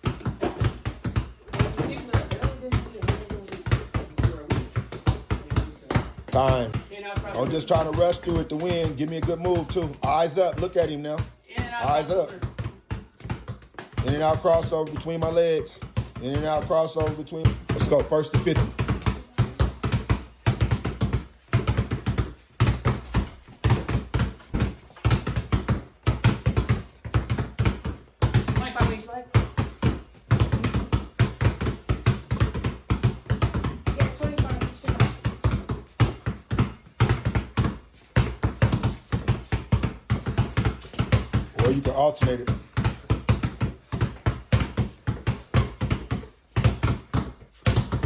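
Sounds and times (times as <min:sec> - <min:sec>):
basketballs bouncing on concrete: 0:00.0 - 0:48.0.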